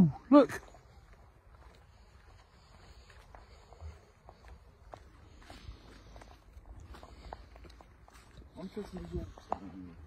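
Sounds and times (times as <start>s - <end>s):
footsteps on leafy dirt path: 0.0s - 10.0s.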